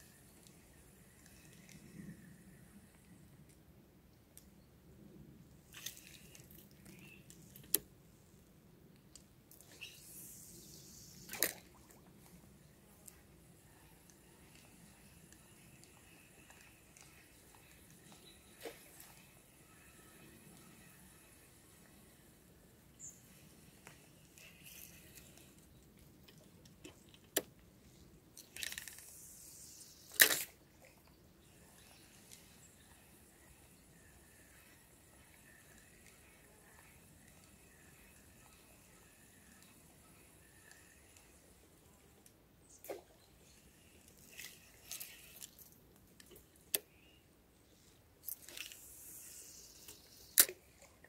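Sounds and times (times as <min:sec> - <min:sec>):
fishing line hissing out: 0:09.6 - 0:12.0, 0:13.5 - 0:25.6, 0:28.6 - 0:30.6, 0:48.3 - 0:50.6
fishing rod handling rustles: 0:23.9 - 0:27.5, 0:28.4 - 0:29.2, 0:44.0 - 0:46.9, 0:48.2 - 0:50.6
fishing reel click: 0:28.4 - 0:29.4.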